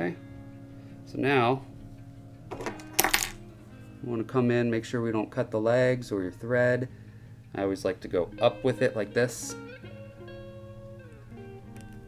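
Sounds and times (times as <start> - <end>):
quiet background music: 0.0 - 12.0
small metal tool clinking: 2.6 - 3.4.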